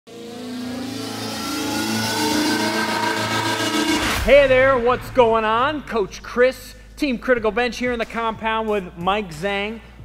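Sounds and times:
slowly rising tone: 0.1 - 4.6.

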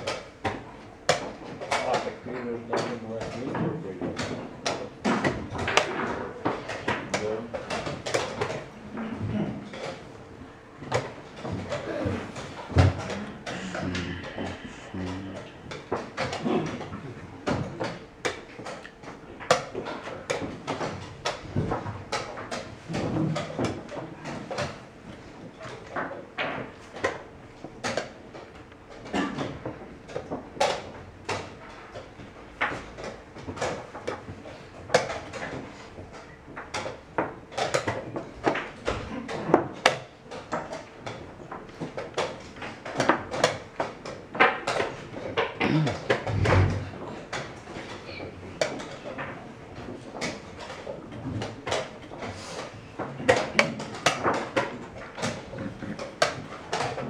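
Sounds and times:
chess pieces knocking on board: 0.0 - 10.1, 10.8 - 57.0.

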